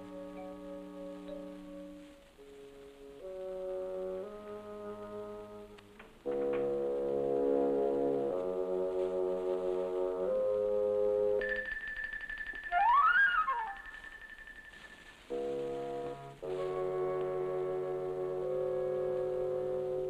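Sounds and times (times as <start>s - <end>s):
low wind and brass chords: 0.0s - 11.4s, 15.3s - 20.0s.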